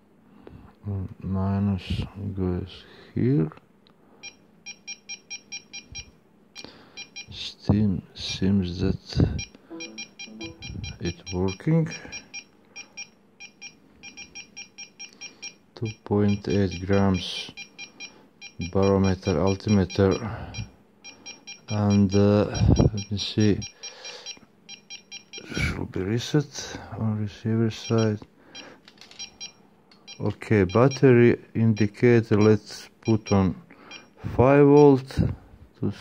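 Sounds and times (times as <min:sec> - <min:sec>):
buzzer beeping in high chirps: 0:09.4 - 0:25.5, 0:27.8 - 0:31.1
electronic buzzer beeps: 0:09.7 - 0:15.6.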